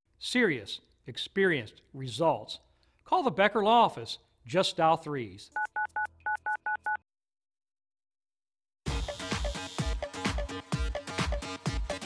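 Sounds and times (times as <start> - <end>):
telephone keypad beeps: 5.6 - 7.0.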